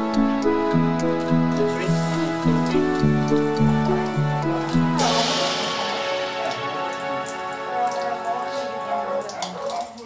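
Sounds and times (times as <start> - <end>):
soft background music: 0.0 - 10.0
water splashing and dripping: 0.0 - 10.0.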